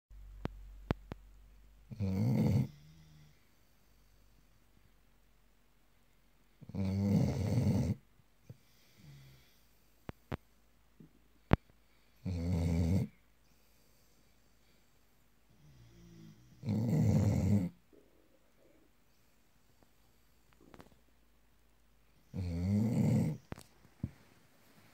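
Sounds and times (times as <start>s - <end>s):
dog snoring: 1.9s - 3.4s, 6.6s - 9.6s, 12.2s - 13.2s, 15.6s - 17.9s, 22.3s - 23.6s.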